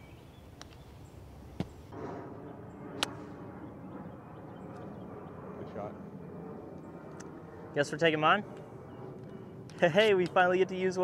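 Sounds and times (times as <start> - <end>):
golf club striking ball: 3.0 - 3.3.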